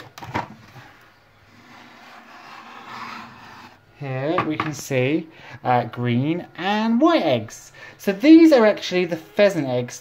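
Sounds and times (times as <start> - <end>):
plastic lid rubbing and scraping: 1.5 - 3.8.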